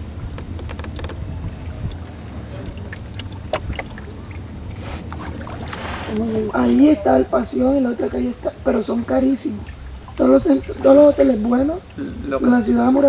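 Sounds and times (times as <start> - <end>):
canoe knocks and splashes: 0.0 - 7.0
low steady rumble: 0.0 - 13.0.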